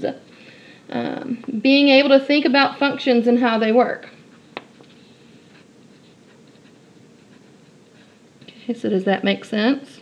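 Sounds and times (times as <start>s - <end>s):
pen scratching on paper: 4.3s - 8.2s.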